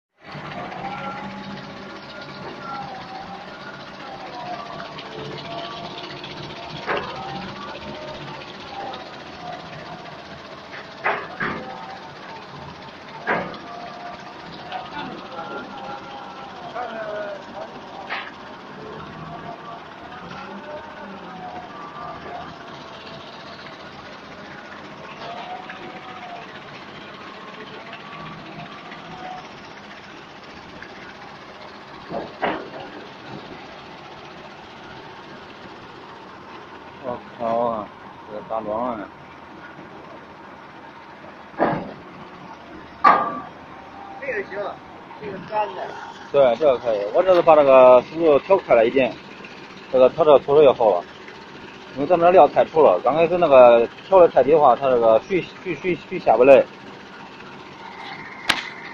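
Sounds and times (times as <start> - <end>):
vibrating screen running: 0.2 - 58.9
voices talking: 0.3 - 58.9.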